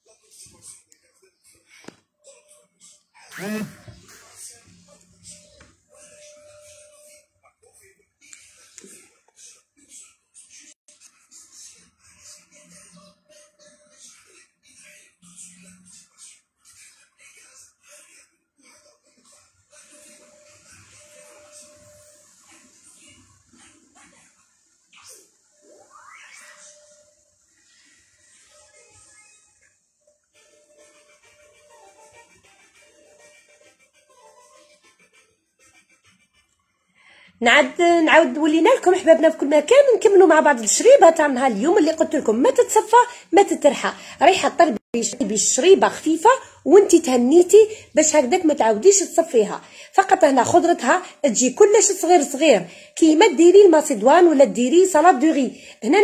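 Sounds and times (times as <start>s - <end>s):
faint music: 0.0s - 56.0s.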